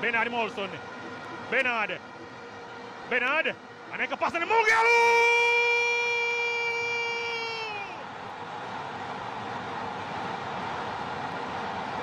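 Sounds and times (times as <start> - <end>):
stadium crowd noise: 0.0 - 12.0
commentator shouting: 4.0 - 8.0.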